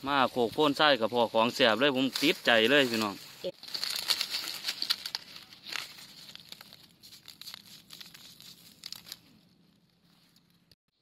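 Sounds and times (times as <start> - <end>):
dry leaves rustling and crackling: 0.6 - 9.4.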